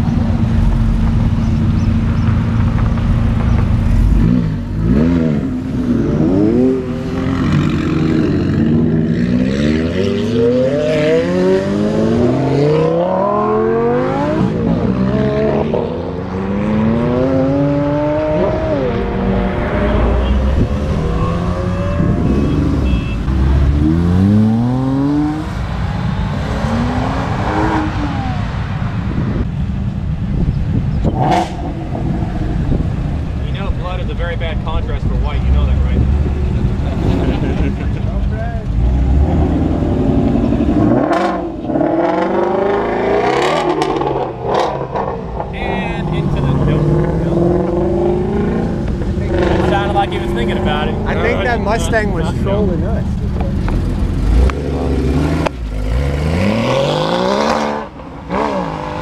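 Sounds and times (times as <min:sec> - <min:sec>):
cars accelerating hard: 0:00.0 - 0:29.6, 0:30.7 - 0:59.0
engines revving: 0:00.0 - 0:59.0.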